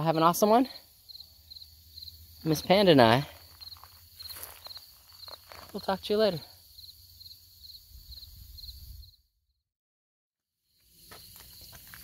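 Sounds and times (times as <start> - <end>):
faint outdoor ambience: 0.0 - 9.4, 10.7 - 12.0
insect chirping: 0.0 - 9.5, 10.6 - 12.0.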